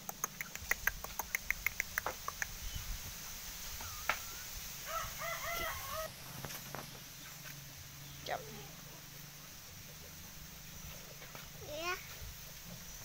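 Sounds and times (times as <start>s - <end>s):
chickens calling: 0.1s - 13.0s.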